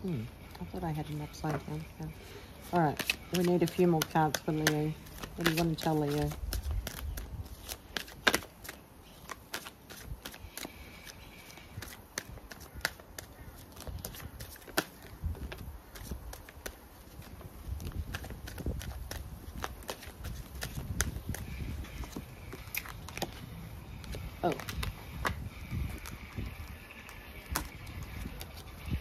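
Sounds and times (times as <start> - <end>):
cards being shuffled: 2.5 - 28.8.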